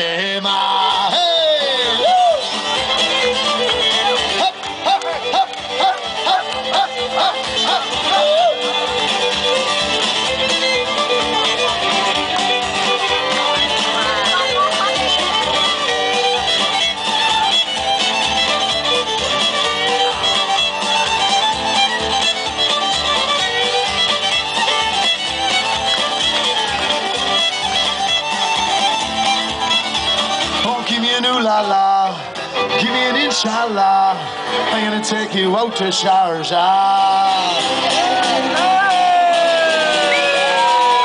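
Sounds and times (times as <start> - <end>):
fiddle melody: 0.0 - 41.0
live folk band playing: 0.0 - 41.0.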